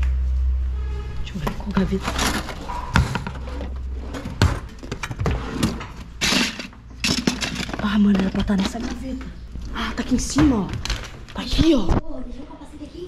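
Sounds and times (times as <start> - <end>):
kitchen drawers opening and shutting: 1.3 - 9.2
items clattering in drawers: 1.4 - 11.7
rustling of loose items and packaging: 1.4 - 11.7.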